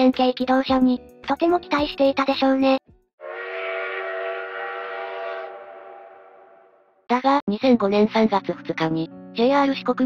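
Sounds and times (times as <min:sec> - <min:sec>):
train whistle chord: 0:03.2 - 0:06.9.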